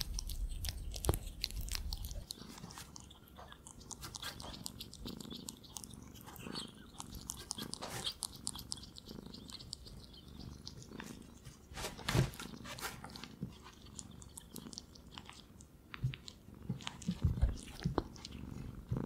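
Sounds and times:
ferret chewing and licking: 0:00.0 - 0:19.0.

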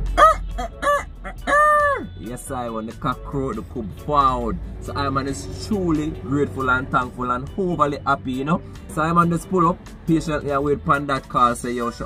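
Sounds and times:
man imitating rooster crow: 0:00.1 - 0:02.2.

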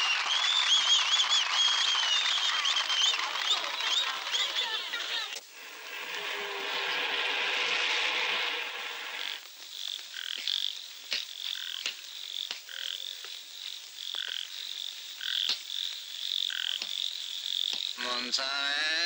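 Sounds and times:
frogs calling in chorus: 0:03.0 - 0:19.0.

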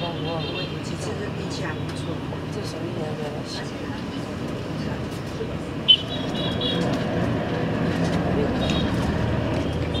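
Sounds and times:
street traffic rumble and hiss: 0:00.0 - 0:10.0.

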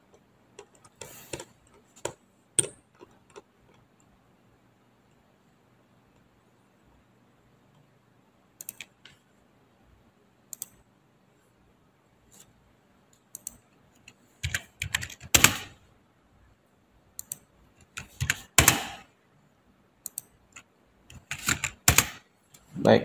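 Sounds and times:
computer keyboard clicks: 0:00.6 - 0:03.5, 0:08.6 - 0:09.2, 0:10.5 - 0:10.8, 0:13.1 - 0:15.7, 0:17.2 - 0:19.0, 0:20.0 - 0:22.2
mouse clicks: 0:08.6 - 0:09.2, 0:10.5 - 0:10.8, 0:13.1 - 0:13.6, 0:17.2 - 0:17.5, 0:20.0 - 0:20.3.

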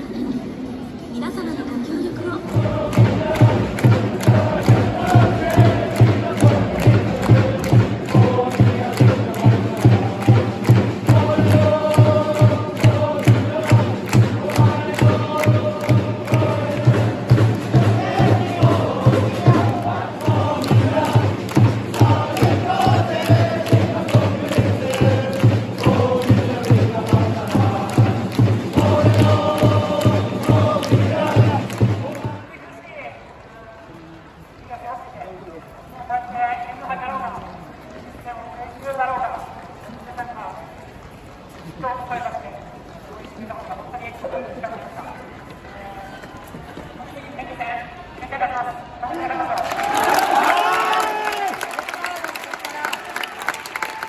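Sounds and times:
crowd chanting in unison: 0:02.2 - 0:32.5
bass drum beating: 0:02.5 - 0:32.3.

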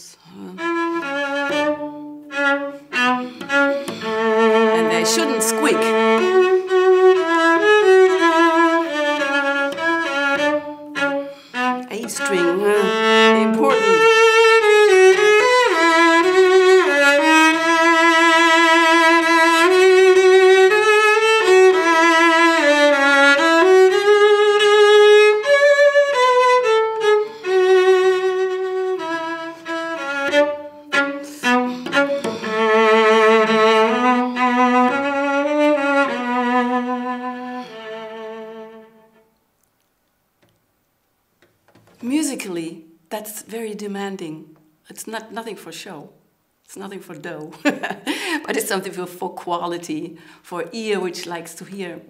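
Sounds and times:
solo cello melody: 0:00.4 - 0:39.5.

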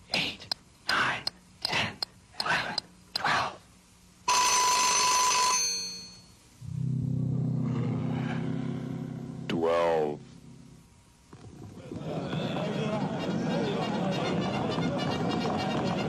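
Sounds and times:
bell ringing: 0:04.3 - 0:06.3
low buzzing drone: 0:06.6 - 0:11.8.

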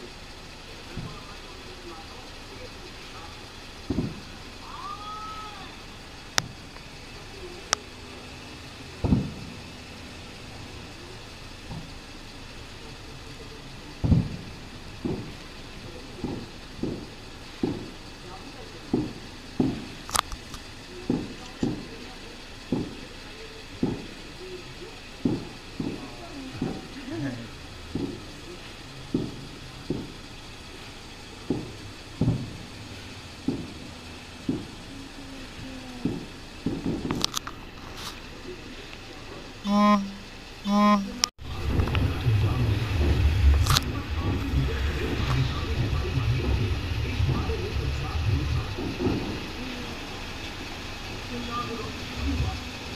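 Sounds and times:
distant fireworks booming: 0:00.0 - 0:52.9
firework sharp crack: 0:00.0 - 0:52.9.

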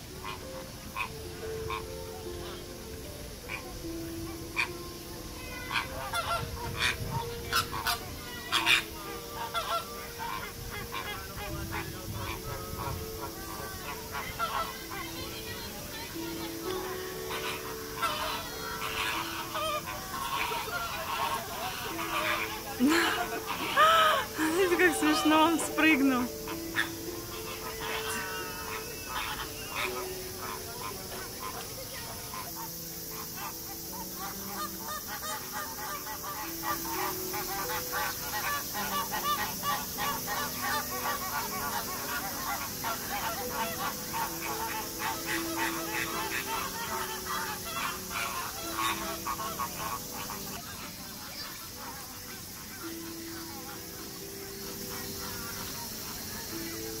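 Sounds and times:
flamingos calling: 0:00.0 - 0:57.0.

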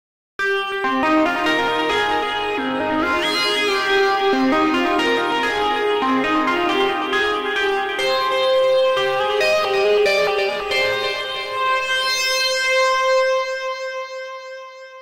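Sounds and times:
synthesizer melody: 0:00.8 - 0:13.6.

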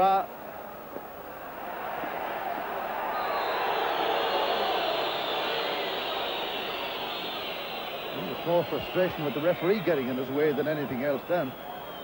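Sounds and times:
stadium crowd roar: 0:00.3 - 0:12.0.

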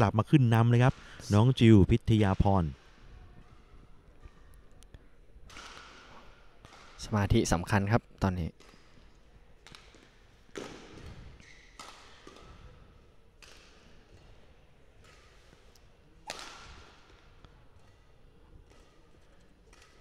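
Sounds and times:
racket hitting shuttlecock: 0:05.4 - 0:07.0, 0:08.6 - 0:18.0, 0:18.6 - 0:20.0
shoes squeaking on court: 0:10.9 - 0:12.6.

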